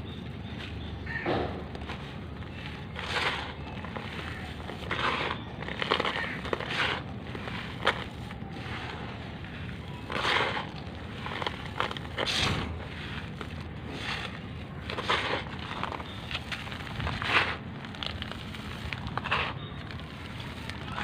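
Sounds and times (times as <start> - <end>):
charcoal granules crunching: 0.0 - 21.0.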